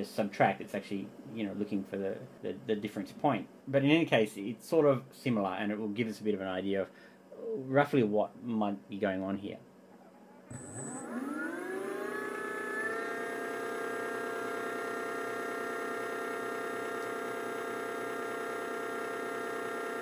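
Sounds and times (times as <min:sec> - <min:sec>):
electric motor whine: 0:10.2 - 0:20.0.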